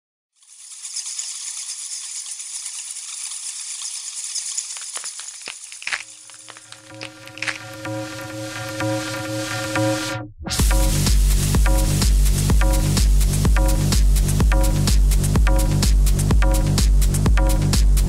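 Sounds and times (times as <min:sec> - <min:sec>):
hissing crackling noise: 0:02.4 - 0:08.3.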